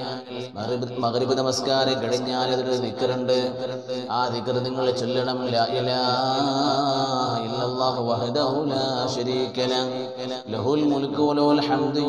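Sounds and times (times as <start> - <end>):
man chanting religious recitation: 0.0 - 12.0.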